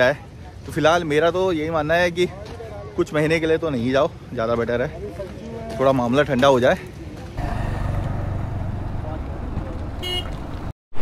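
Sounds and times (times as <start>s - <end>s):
vehicle engine running: 7.4s - 10.7s
horn toot: 10.0s - 10.4s.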